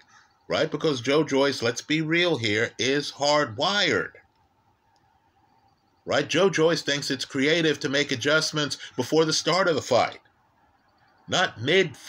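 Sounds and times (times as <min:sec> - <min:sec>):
faint steady hum: 0:00.0 - 0:12.0
man speaking: 0:00.5 - 0:04.2, 0:06.1 - 0:10.2, 0:11.3 - 0:12.0
faint click: 0:04.2 - 0:05.2.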